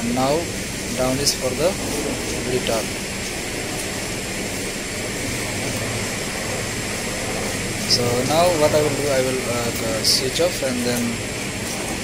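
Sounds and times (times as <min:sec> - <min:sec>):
air handling unit fan rushing: 0:00.0 - 0:12.0
low hum: 0:00.0 - 0:12.0.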